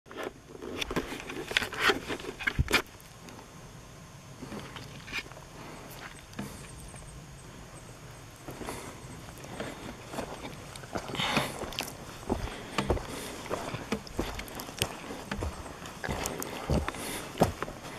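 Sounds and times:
footsteps outdoors: 0.1 - 3.4, 4.4 - 7.1, 8.3 - 17.9
outdoor background: 0.1 - 17.9.

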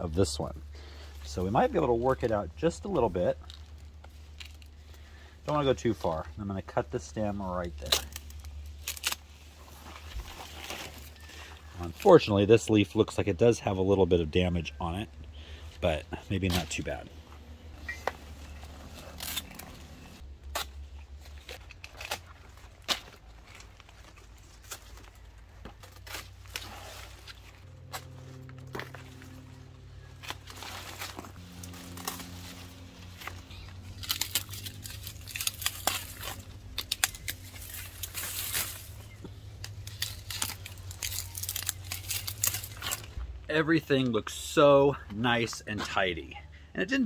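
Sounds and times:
leaves rustling and crinkling: 0.0 - 44.3
pruners clicking and snipping: 7.7 - 9.2, 30.2 - 43.1.

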